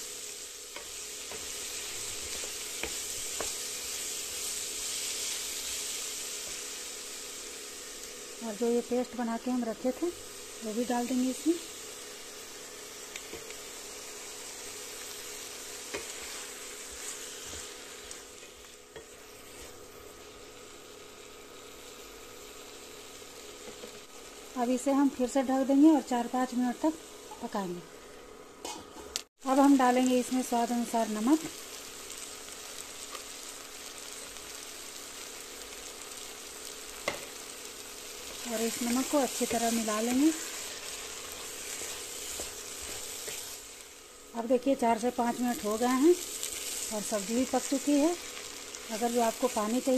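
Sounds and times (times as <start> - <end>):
vegetables sizzling in pan: 0.0 - 49.9.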